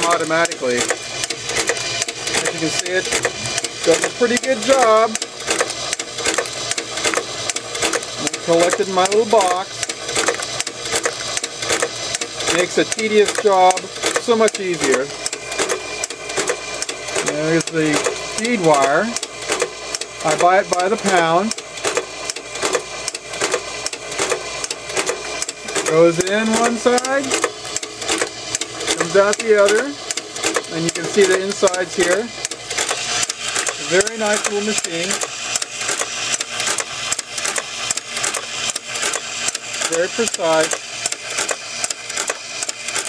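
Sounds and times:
wire-cutting machine clicking: 0:00.0 - 0:43.0.

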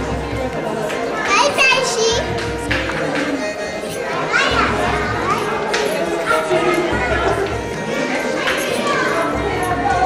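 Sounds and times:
adults chattering: 0:00.0 - 0:10.0
background music: 0:00.0 - 0:10.0
children calling out: 0:03.7 - 0:10.0.

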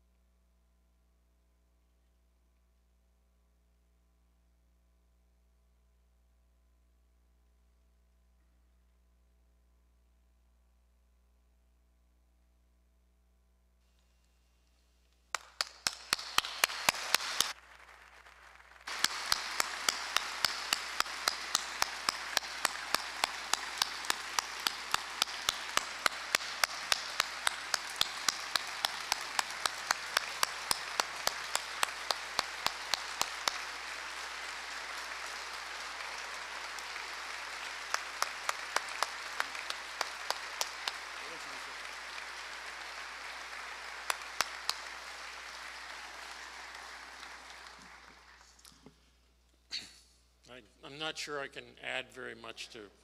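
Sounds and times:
audience applauding: 0:15.3 - 0:48.7
nearby sharp hand claps: 0:15.3 - 0:49.0.

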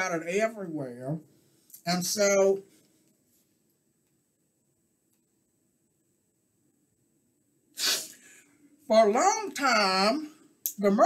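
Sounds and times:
man's sharp burst of breath: 0:07.8 - 0:08.5.

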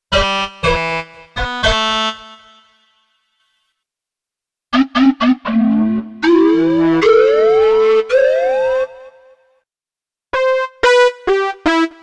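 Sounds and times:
synthesizer stabs and sweeping notes: 0:04.7 - 0:08.8.

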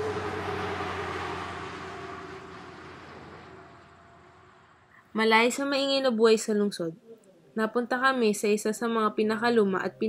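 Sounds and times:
city street traffic: 0:00.0 - 0:05.1.

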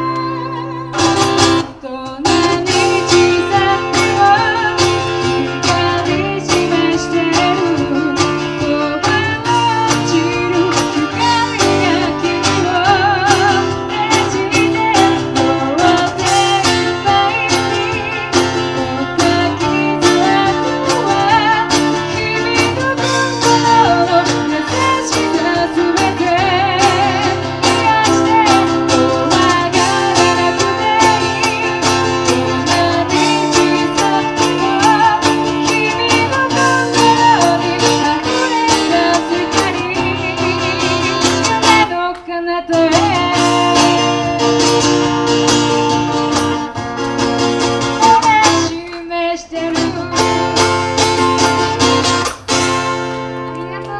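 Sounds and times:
woman singing: 0:00.0 - 0:46.6, 0:47.8 - 0:51.8, 0:53.6 - 0:53.9
acoustic guitar strumming: 0:00.0 - 0:53.9
cajon drumming: 0:00.0 - 0:53.9
electric guitar: 0:00.0 - 0:53.9.

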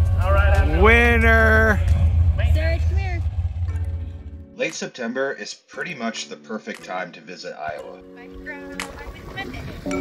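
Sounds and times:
steady low rumble: 0:00.0 - 0:04.5.

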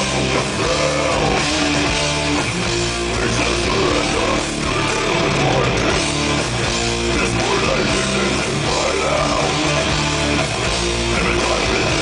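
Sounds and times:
bass guitar: 0:00.0 - 0:12.0
distorted electric guitars: 0:00.0 - 0:12.0
drum kit: 0:00.0 - 0:12.0.

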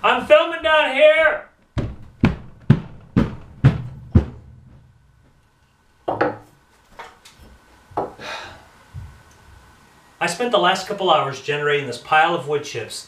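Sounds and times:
ringing thumps on wood: 0:01.8 - 0:04.8, 0:06.1 - 0:06.5
short knock: 0:01.8 - 0:04.8.

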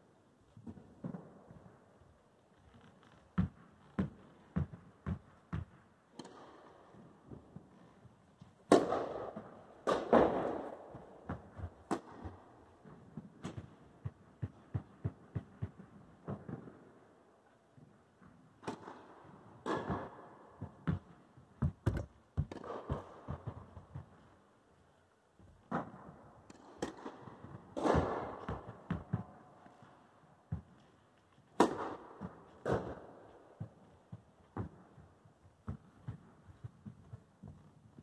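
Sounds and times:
tennis balls bouncing: 0:03.4 - 0:17.0, 0:18.2 - 0:24.4, 0:25.4 - 0:38.0
racket hitting tennis ball: 0:08.6 - 0:16.8, 0:18.6 - 0:24.3, 0:25.7 - 0:29.5, 0:31.5 - 0:35.0
footsteps: 0:27.4 - 0:38.0.

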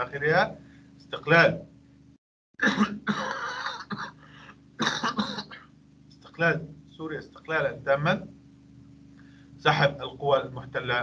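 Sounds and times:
man clearing his throat: 0:02.6 - 0:04.2, 0:04.8 - 0:05.7.

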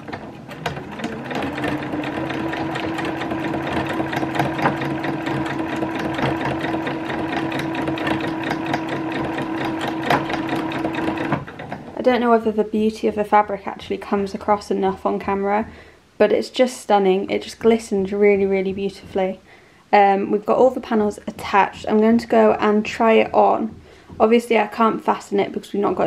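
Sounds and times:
electric sewing machine stitching: 0:00.0 - 0:12.0.

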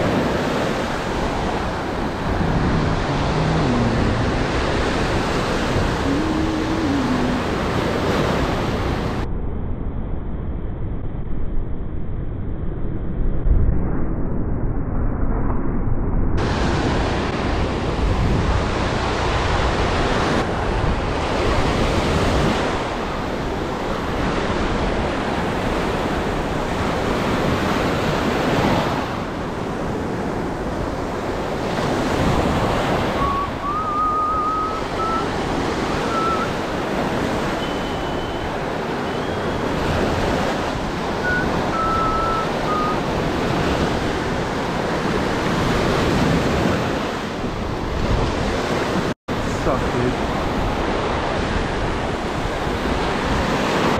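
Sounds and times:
ocean surf breaking on sand: 0:00.0 - 0:09.2, 0:16.4 - 0:53.9.

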